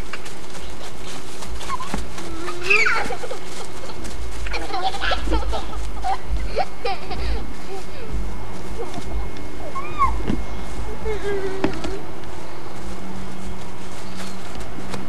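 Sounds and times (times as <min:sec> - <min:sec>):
camcorder rumble and hiss: 0:00.0 - 0:15.0
children shouting and squealing: 0:01.6 - 0:03.8, 0:08.8 - 0:12.1.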